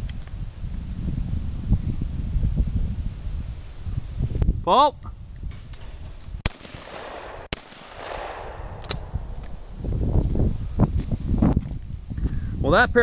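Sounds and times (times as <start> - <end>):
shotgun shots: 6.4 - 9.7.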